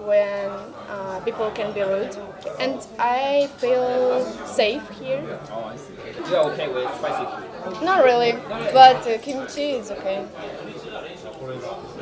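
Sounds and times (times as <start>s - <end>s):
background voices chattering: 0.0s - 12.0s.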